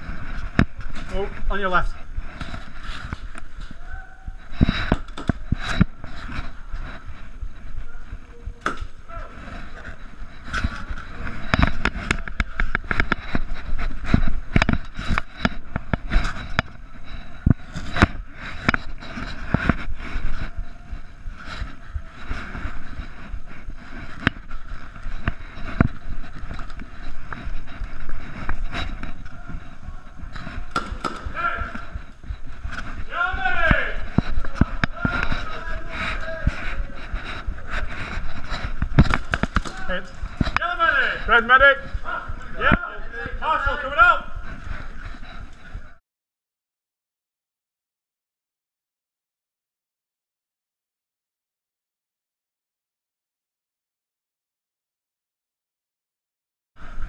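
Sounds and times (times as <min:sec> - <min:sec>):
faint voices: 0:00.0 - 0:46.0
footsteps on debris: 0:00.0 - 0:46.0.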